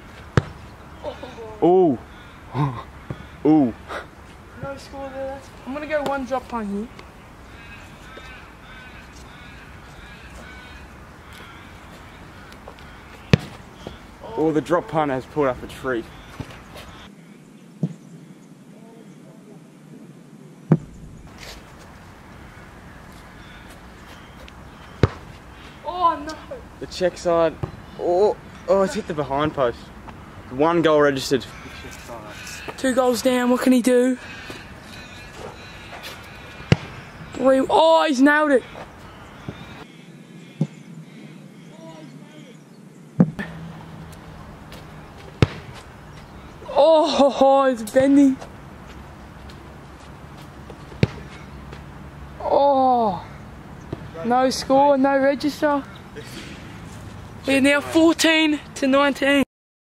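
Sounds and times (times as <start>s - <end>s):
outdoor background noise: 0.0s - 59.5s
boot kicking football thud: 0.4s - 0.6s, 20.7s - 21.0s, 25.0s - 25.3s, 36.7s - 36.9s, 45.2s - 45.8s, 51.0s - 51.3s.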